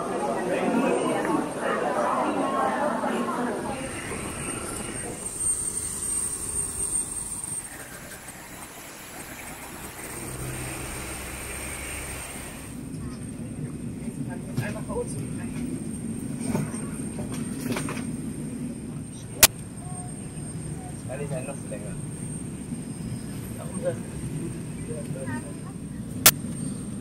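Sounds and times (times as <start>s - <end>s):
jet engine high-pitched whine: 3.7s - 13.0s
voices in background: 18.7s - 26.2s.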